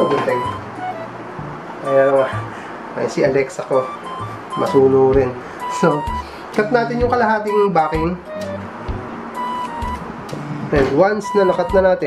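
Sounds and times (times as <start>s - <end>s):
background music with held tone: 0.0s - 12.0s.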